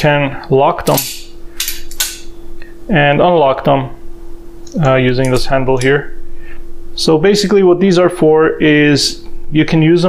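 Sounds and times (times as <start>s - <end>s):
locking pliers clicking shut: 0.9s - 2.3s.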